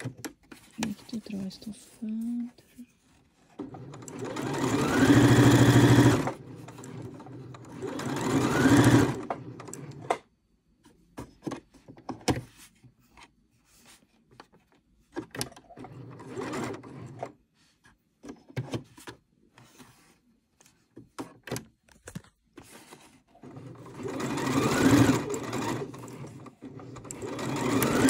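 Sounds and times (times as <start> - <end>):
sewing machine stitching: 3.6 - 10.2, 15.6 - 17.3, 23.4 - 28.0.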